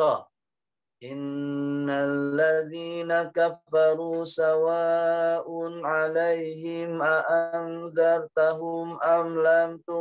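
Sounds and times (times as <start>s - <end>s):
man chanting a recitation: 0.0s - 0.3s, 1.0s - 10.0s.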